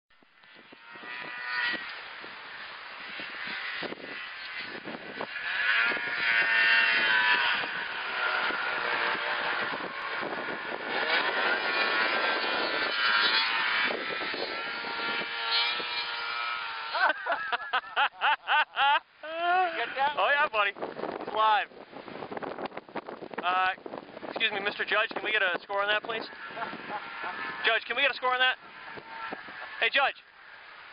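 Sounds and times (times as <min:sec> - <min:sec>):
snowmobile engine running: 0:00.4 - 0:21.6, 0:23.5 - 0:30.9
rapid choppy fluttering: 0:00.5 - 0:18.0, 0:22.0 - 0:30.9.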